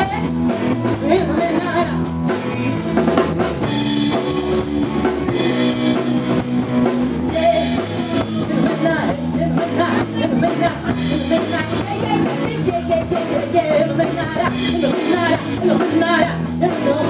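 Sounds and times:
blues band playing: 0.0 - 17.0
drum kit: 0.0 - 17.0.

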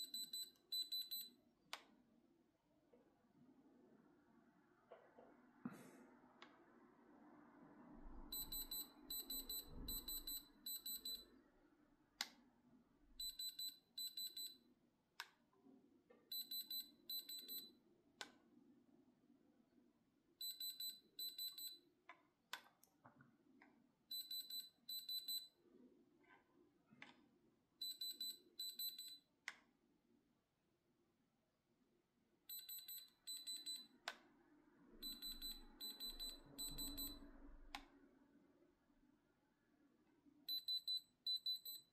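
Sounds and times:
rapid high-pitched beeps: 0.0 - 1.3, 8.3 - 11.3, 35.0 - 37.2, 40.5 - 41.9.

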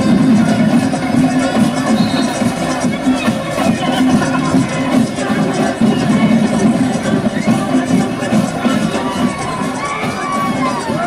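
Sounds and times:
crowd cheering and shouting: 0.0 - 11.0
marching band drums: 0.0 - 11.0.

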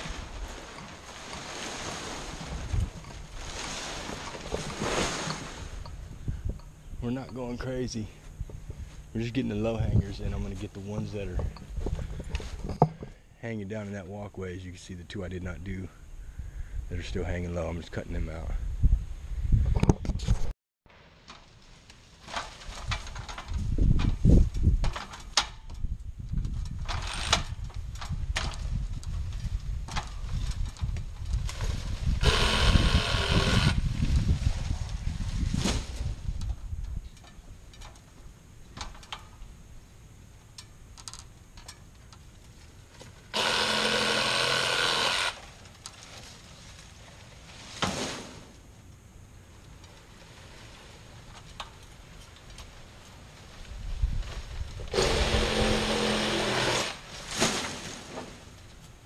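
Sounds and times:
knocks and rustles of fronds: 0.0 - 14.9, 20.1 - 59.0
power tool cutting fronds: 32.2 - 33.8, 43.3 - 45.5, 54.9 - 57.2.

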